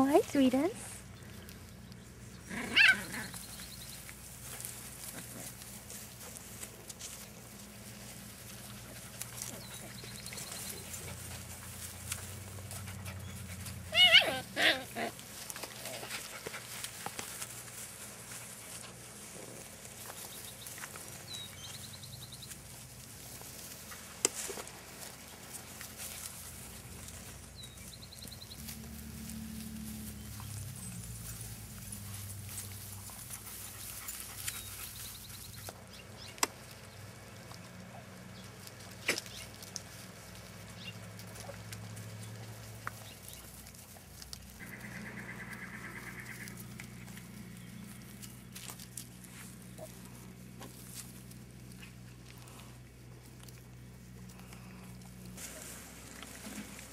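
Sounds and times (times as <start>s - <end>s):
puppies growling and grunting: 2.2s - 3.9s, 9.3s - 16.9s
puppy yelping: 2.5s - 3.4s, 13.9s - 15.2s.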